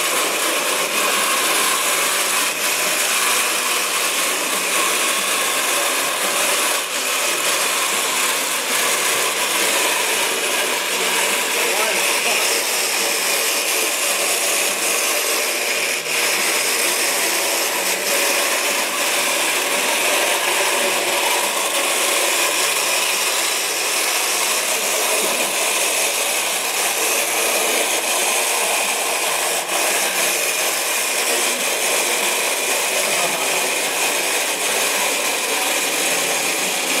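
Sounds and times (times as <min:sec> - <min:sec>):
small electric motors whining: 0:00.0 - 0:37.0.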